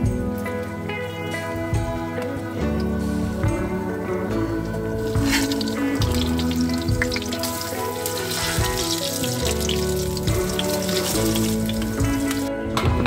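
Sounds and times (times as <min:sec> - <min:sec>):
slow background music: 0:00.0 - 0:13.0
food sizzling in hot oil: 0:04.4 - 0:12.5.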